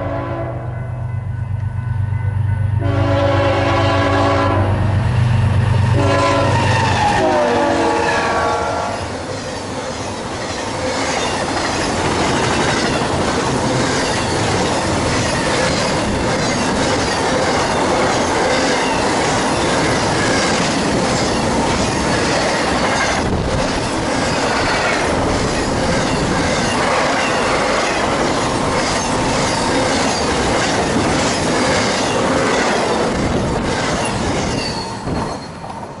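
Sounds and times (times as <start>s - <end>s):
locomotive horn: 0.0s - 0.8s, 2.8s - 4.9s, 5.9s - 9.1s
freight cars rushing and clattering: 9.0s - 36.0s.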